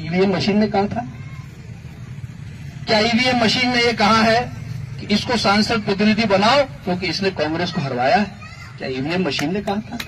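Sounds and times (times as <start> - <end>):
man's amplified speech: 0.0 - 1.2, 2.8 - 10.0.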